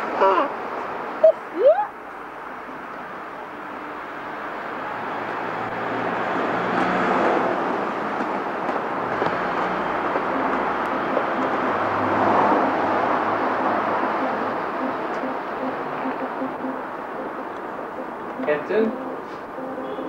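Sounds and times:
outdoor rumble: 0:01.9 - 0:20.0.

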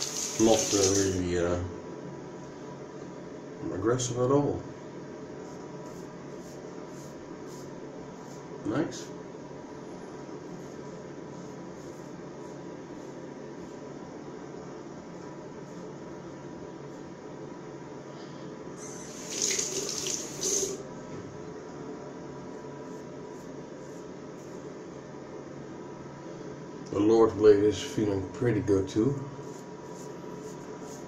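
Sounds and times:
low room hiss: 0:00.0 - 0:31.0
tap water splashing into sink: 0:19.2 - 0:20.8.

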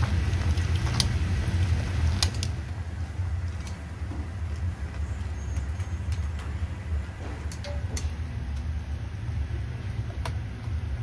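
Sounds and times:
low rumble of boiling water: 0:00.0 - 0:11.0.

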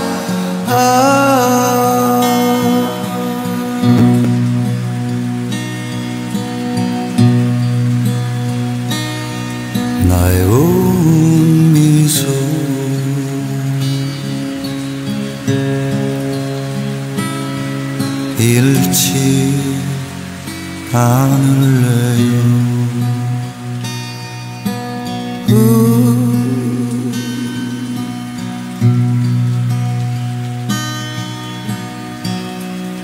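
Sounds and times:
acoustic guitar strumming chords: 0:00.0 - 0:33.0
rain hiss: 0:00.0 - 0:33.0.

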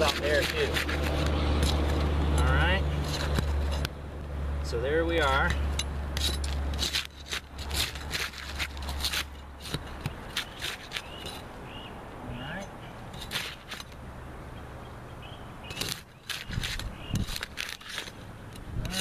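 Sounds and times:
pry bar scraping shingles: 0:00.0 - 0:04.0, 0:05.2 - 0:11.6, 0:13.0 - 0:14.0, 0:15.6 - 0:19.0.

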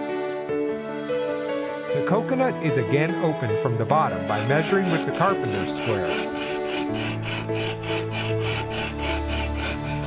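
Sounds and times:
background music: 0:00.0 - 0:10.0
saw rasping through coconut shell: 0:04.1 - 0:10.0.

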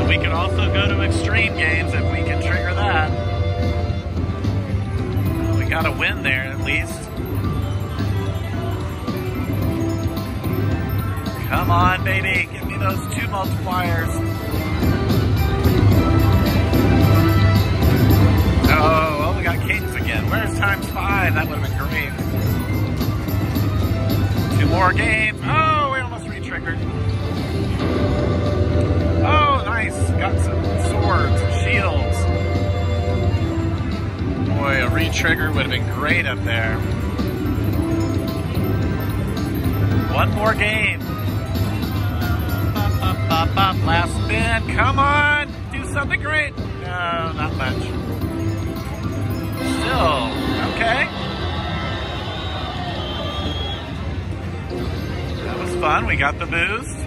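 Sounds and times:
low casino hum: 0:00.0 - 0:57.0
slot machine electronic tones: 0:04.9 - 0:33.3, 0:34.5 - 0:46.2, 0:47.1 - 0:51.7.

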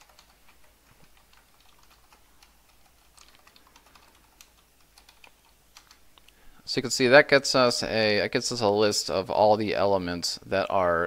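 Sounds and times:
faint keyboard typing: 0:00.0 - 0:06.4.

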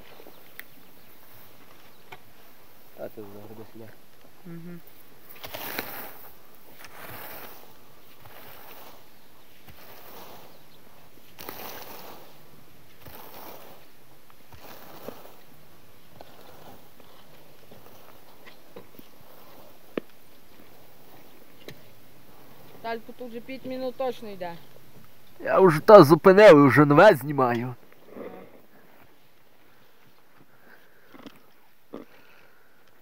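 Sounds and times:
raking grass rustling swish: 0:05.2 - 0:24.2.

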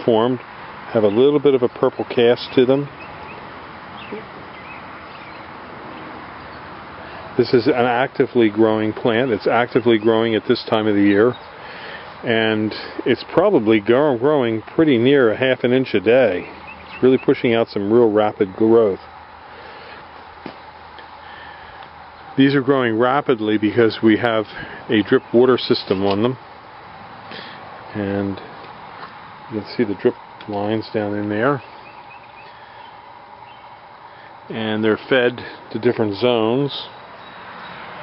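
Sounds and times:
outdoor background noise: 0:00.0 - 0:38.0
faint bird chirps: 0:31.6 - 0:33.8.

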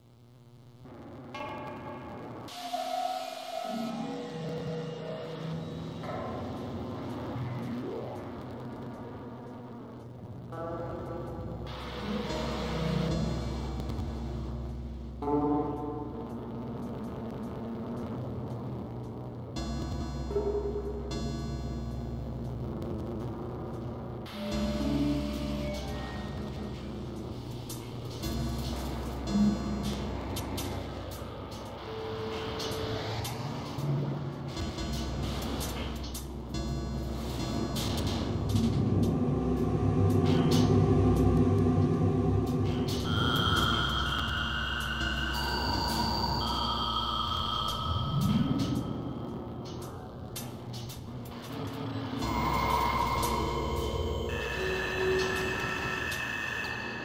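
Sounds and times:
low synth drone tones: 0:00.8 - 0:57.0
dense noisy wash: 0:26.4 - 0:51.2.

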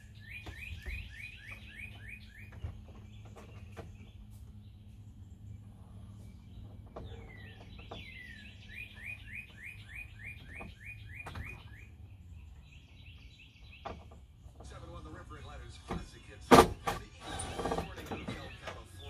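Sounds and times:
low background hum: 0:00.0 - 0:19.0
songbird chirping: 0:00.0 - 0:19.0.

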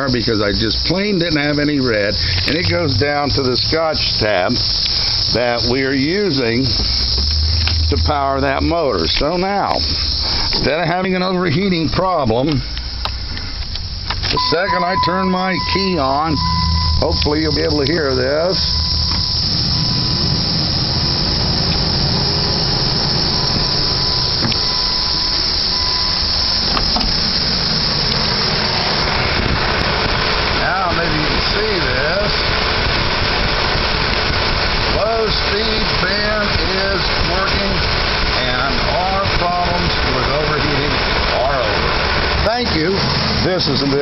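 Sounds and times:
radiator cooling fan running: 0:00.0 - 0:44.0.

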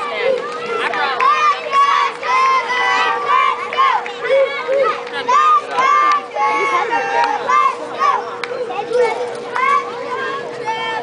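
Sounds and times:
steady high hum: 0:00.0 - 0:11.0
voices chattering and calling out: 0:00.0 - 0:11.0.

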